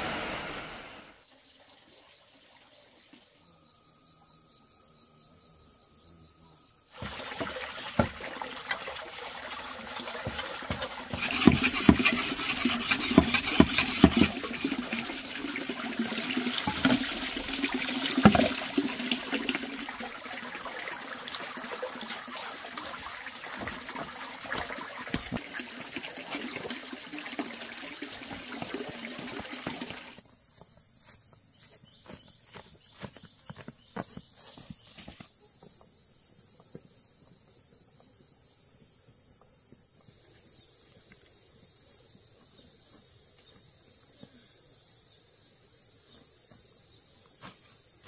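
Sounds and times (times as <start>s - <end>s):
insects chirping: 1.2s - 25.5s, 30.2s - 48.0s
water pouring into a plastic basin: 7.0s - 30.2s
blade scraping on a whetstone: 10.7s - 14.3s.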